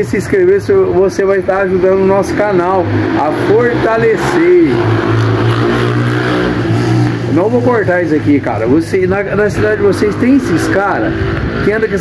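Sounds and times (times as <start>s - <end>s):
motorcycle engine drone: 0.0s - 12.0s.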